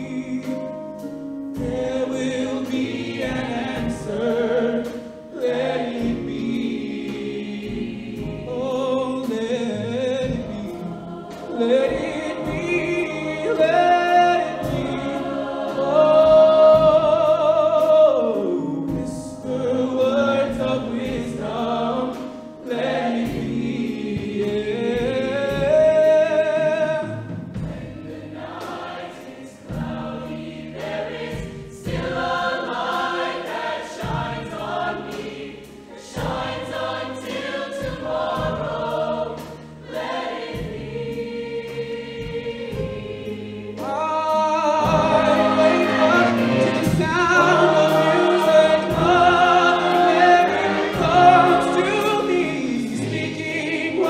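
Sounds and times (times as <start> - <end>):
choir singing: 0.0 - 54.0
live backing band: 0.0 - 54.0.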